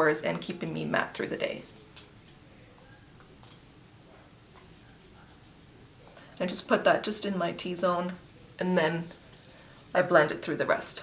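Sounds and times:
fingertips rubbing skin: 3.0s - 6.1s, 7.6s - 10.2s.

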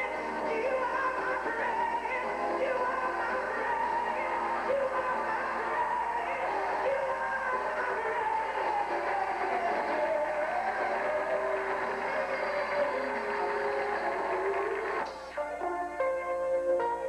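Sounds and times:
woman singing gospel: 0.0s - 14.2s
instrumental accompaniment: 0.0s - 17.0s.

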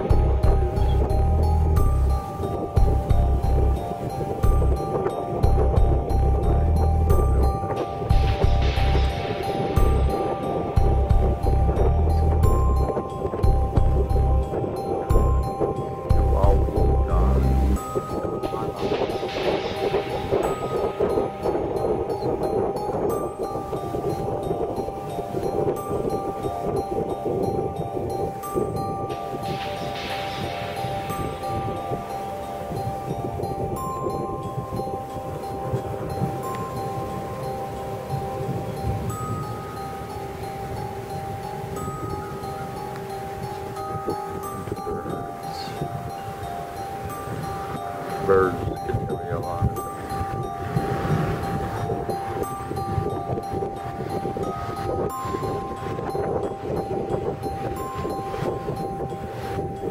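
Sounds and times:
gusting storm wind: 0.0s - 59.9s
ringing tones: 0.0s - 59.9s.

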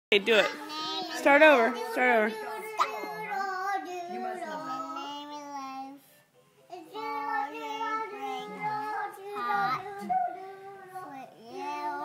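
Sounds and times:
young child singing: 0.6s - 6.1s, 6.7s - 12.0s.

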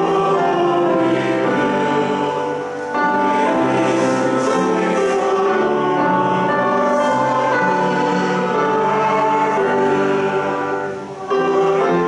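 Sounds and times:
congregation singing a hymn: 0.0s - 12.0s
pipe organ chords: 0.0s - 12.0s.

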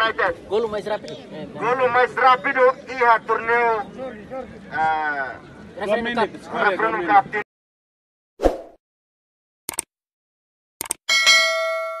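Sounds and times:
double mouse click: 9.7s - 9.9s, 10.8s - 11.0s
notification bell chime: 11.1s - 12.0s.

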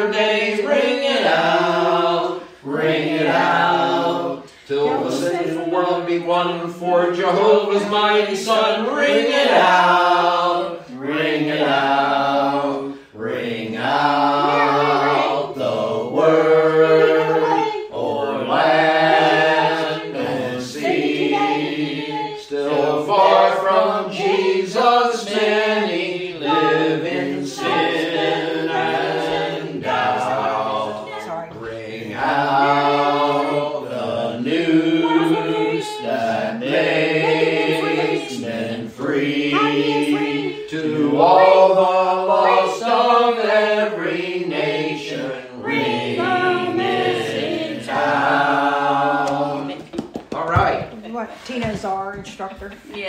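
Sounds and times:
a cappella hymn singing: 0.0s - 50.8s.

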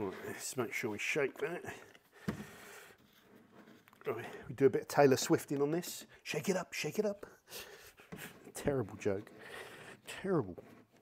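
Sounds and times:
soft handling noise: 0.0s - 6.2s, 7.9s - 11.0s.

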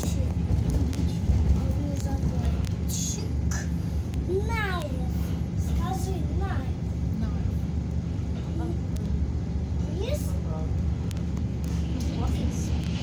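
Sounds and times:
electric train rumbling: 0.0s - 13.0s.

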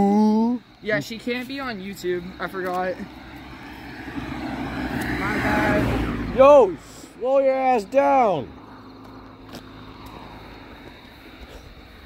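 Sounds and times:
car approaching fast: 1.7s - 11.3s.

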